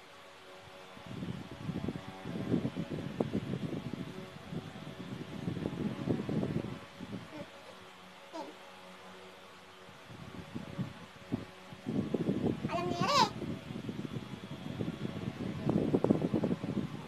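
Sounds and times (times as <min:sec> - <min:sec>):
electric fan humming: 0:00.0 - 0:17.0.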